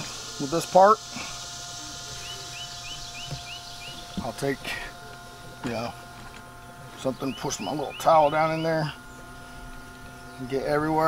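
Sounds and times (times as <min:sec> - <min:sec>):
bird chirping: 0:02.2 - 0:04.4, 0:06.6 - 0:10.9.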